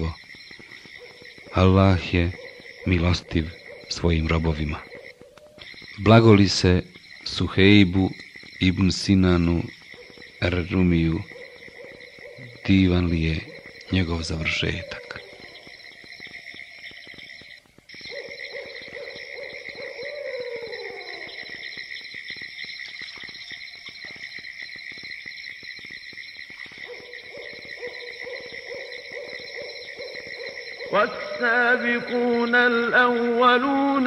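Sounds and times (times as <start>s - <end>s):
owl-like hoots: 14.6s - 15.7s, 18.1s - 21.5s.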